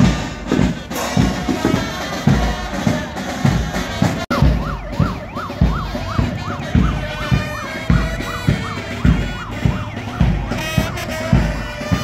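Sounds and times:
bass drum beating: 0.0 - 12.0
vehicle siren yelping: 1.4 - 12.0.

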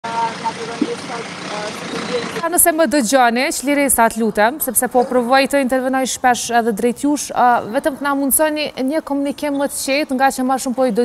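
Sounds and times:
road traffic rushing: 0.0 - 10.8.

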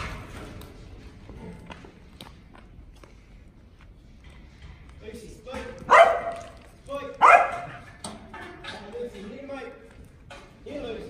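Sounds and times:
dog barking: 5.8 - 6.6, 7.2 - 7.9.

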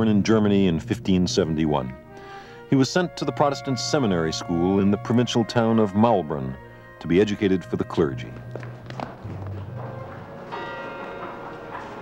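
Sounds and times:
church bell ringing: 3.4 - 12.0.

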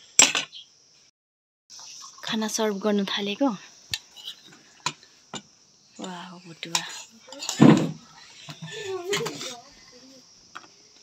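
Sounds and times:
crickets trilling: 0.0 - 1.1, 1.7 - 11.0.

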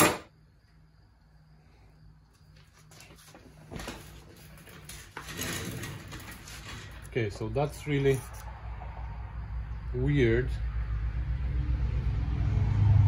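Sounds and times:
metallic clinks and scrapes: 4.3 - 8.5.

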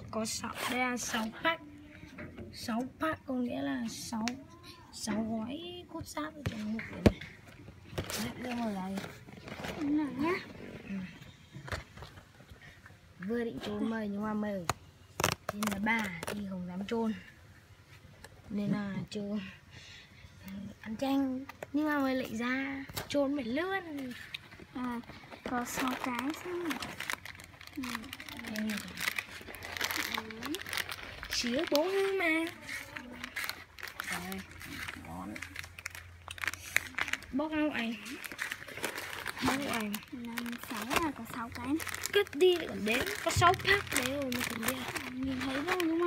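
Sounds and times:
snack packaging crinkling: 15.1 - 16.6, 23.9 - 46.0.

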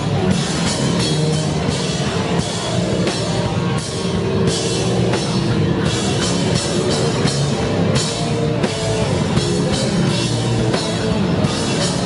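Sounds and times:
bass guitar: 0.0 - 12.0
distorted electric guitar: 0.0 - 12.0
drum kit: 0.0 - 12.0.

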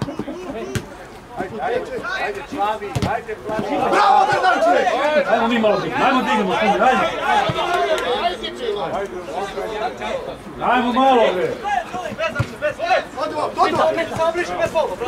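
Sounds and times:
men shouting and calling: 0.0 - 15.0.

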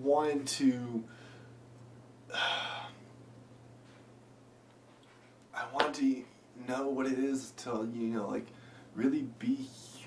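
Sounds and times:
faint low hum: 0.0 - 10.0
man's sharp intake of breath: 2.3 - 3.0.

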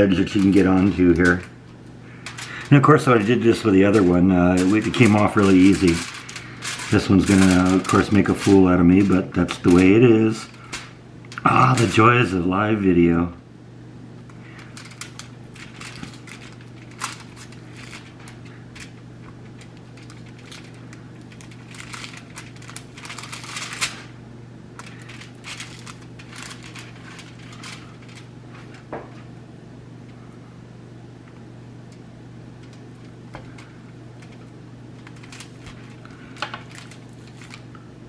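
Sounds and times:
foil crinkling: 0.0 - 12.4, 14.3 - 24.2, 24.8 - 29.4, 32.6 - 38.0
steady low hum: 0.0 - 38.0
knife scraping on foil and metal: 2.1 - 10.8, 14.4 - 24.1, 24.8 - 28.8.

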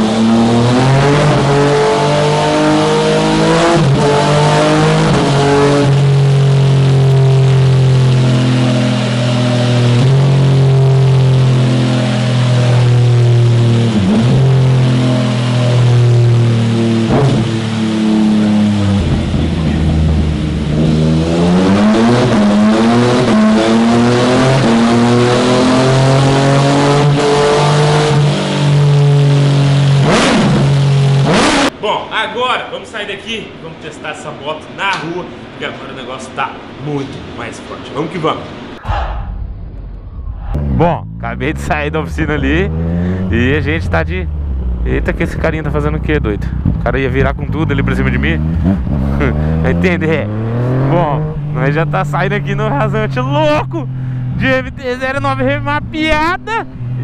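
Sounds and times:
motorcycle engine revving: 0.0 - 31.8, 40.2 - 54.6.

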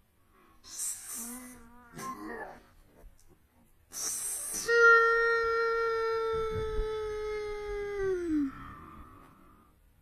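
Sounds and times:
woman's high-pitched excited cry: 4.6 - 8.6.

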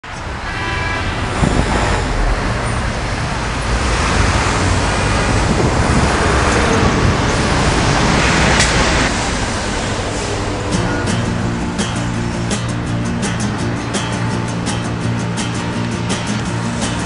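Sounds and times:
street traffic: 0.0 - 17.0.

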